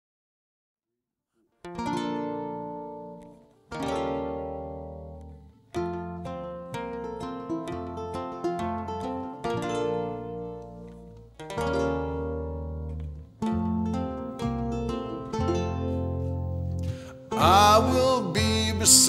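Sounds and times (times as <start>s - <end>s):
ukuleles strumming chords: 1.6s - 19.0s
electric bass notes: 1.9s - 19.0s.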